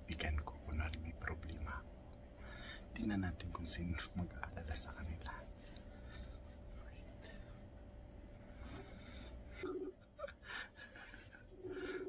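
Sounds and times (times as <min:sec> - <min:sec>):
faint steady hum: 0:00.0 - 0:12.0
soft whispering: 0:03.0 - 0:07.7.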